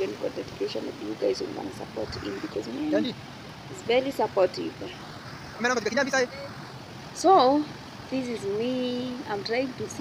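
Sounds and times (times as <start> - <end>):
person's voice: 0.0 - 3.2
river and waterfall rushing: 0.0 - 10.0.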